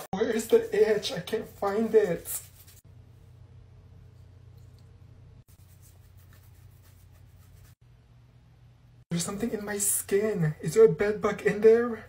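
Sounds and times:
low steady hum: 2.5s - 11.2s
fingernails scratching skin: 5.5s - 7.8s.

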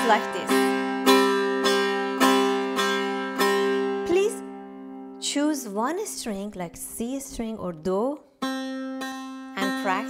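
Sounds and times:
plucked lute strings ringing: 0.0s - 5.2s, 8.4s - 10.0s.

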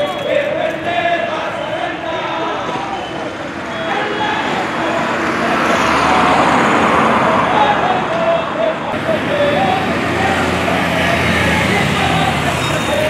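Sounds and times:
road traffic: 0.0s - 13.0s
vehicle passing: 0.0s - 13.0s
voices of marching crowd: 0.0s - 13.0s.

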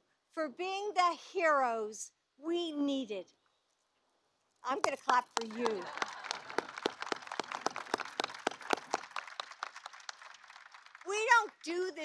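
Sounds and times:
audience applauding: 4.8s - 11.9s.

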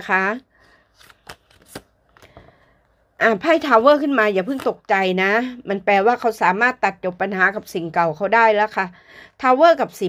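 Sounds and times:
cards snapping: 1.0s - 2.3s.

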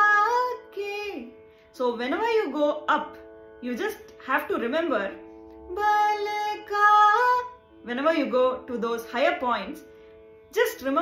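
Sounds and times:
woman singing: 0.0s - 9.9s
shruti box drone: 0.0s - 11.0s.

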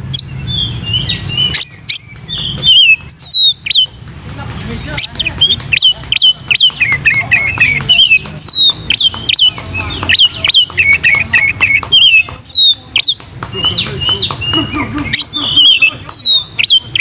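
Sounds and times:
bird singing whistled notes: 0.0s - 17.0s.

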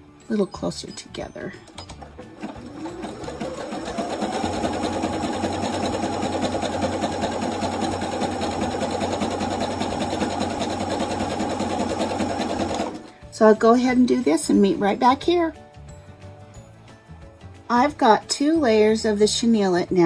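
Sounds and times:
sewing machine stitching: 1.6s - 13.1s.

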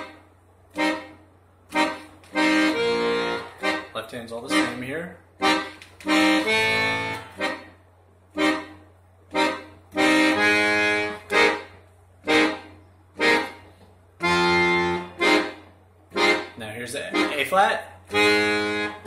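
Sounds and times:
accordion playing jazz chords: 0.0s - 19.0s.

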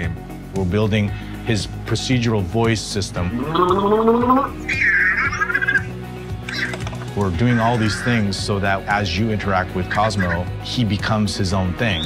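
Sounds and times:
background music: 0.0s - 12.0s
short rising synthesized vocal: 3.3s - 4.7s
high warbling robotic chirp: 3.3s - 6.8s, 7.4s - 8.2s.

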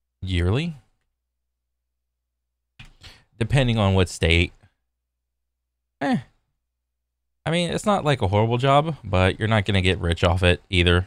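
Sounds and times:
man saying eh: 6.0s - 6.4s.

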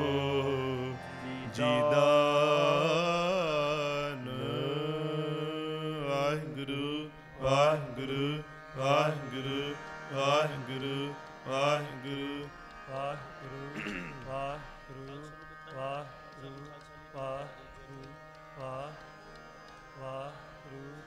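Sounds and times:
men singing: 0.0s - 16.1s
harmonium: 0.0s - 21.0s.

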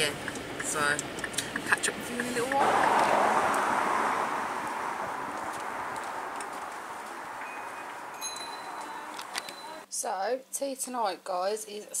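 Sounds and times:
tyres hissing on wet road: 2.6s - 8.1s.

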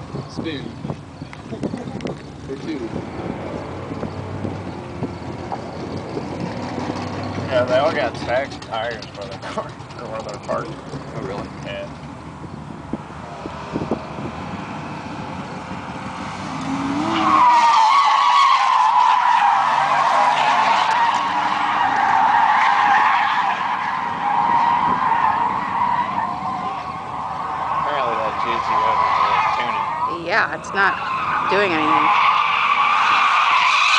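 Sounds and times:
car tyres squealing: 0.0s - 33.9s.

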